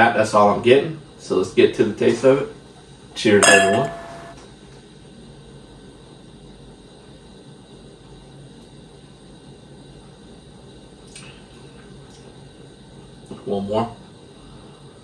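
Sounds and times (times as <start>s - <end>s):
low hum and hiss: 0.0s - 15.0s.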